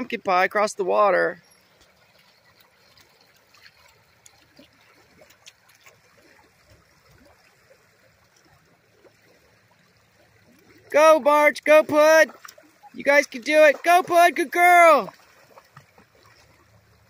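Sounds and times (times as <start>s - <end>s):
river water trickling over gravel: 0.0s - 17.0s
small water splashes: 0.0s - 17.0s.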